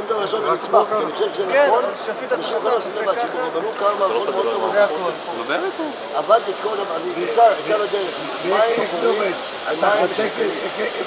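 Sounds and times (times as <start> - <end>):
people talking: 0.0 - 11.0
high hiss: 3.7 - 11.0.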